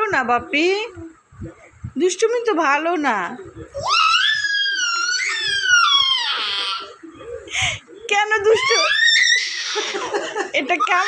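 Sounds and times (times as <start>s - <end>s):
baby squealing: 3.7s - 7.0s, 8.4s - 10.2s.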